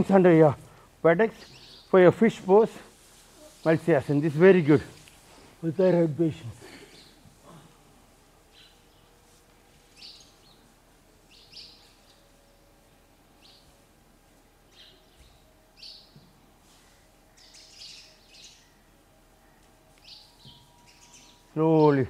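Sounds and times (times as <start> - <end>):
faint bird chirps: 14.7 - 22.0.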